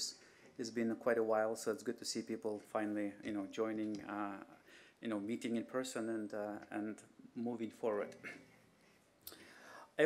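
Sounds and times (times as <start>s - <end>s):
man speaking: 0.0s - 8.6s.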